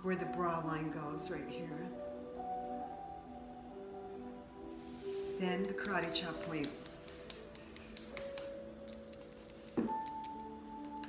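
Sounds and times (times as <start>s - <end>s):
soft background music: 0.0s - 11.0s
hand tapping hand: 5.7s - 11.0s.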